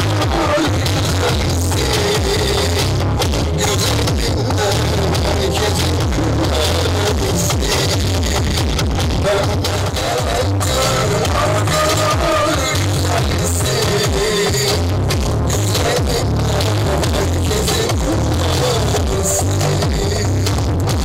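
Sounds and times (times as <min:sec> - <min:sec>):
dance music over loudspeakers: 0:00.0 - 0:21.0.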